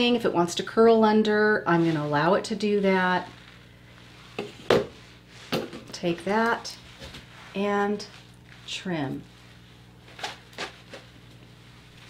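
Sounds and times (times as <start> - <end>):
rustles and taps of hair fibres: 10.0 - 12.0.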